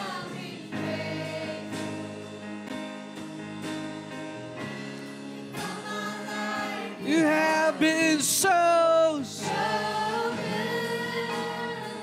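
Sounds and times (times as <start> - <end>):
people singing: 0.0 - 2.7, 5.5 - 12.0
bass guitar: 0.0 - 5.9
electric guitar chords: 0.0 - 12.0.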